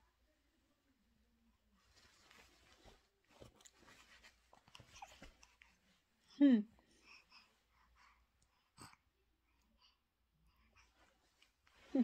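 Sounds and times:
faint rustling: 1.7 - 6.2.

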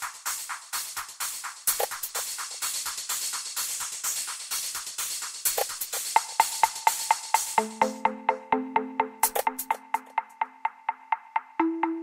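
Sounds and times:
hissing hi-hats: 0.0 - 8.3, 9.2 - 11.7
clicky techno percussion: 0.0 - 12.0.

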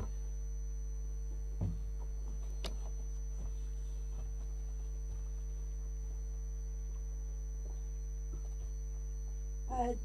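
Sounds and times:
electrical mains hum: 0.0 - 10.0
knocks on microphone: 1.6 - 2.2.

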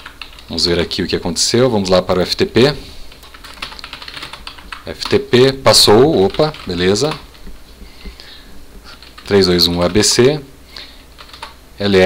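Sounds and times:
computer keyboard typing: 0.0 - 0.7, 3.1 - 10.3, 11.1 - 11.6.

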